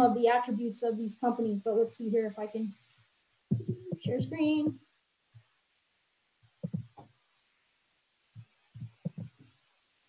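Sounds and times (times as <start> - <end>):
computer clicks and taps: 3.5 - 4.4, 6.6 - 7.1, 8.4 - 9.4.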